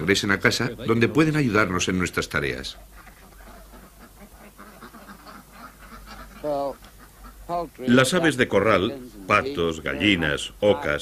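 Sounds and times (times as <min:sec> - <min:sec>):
waterfowl call: 0:02.8 - 0:08.2.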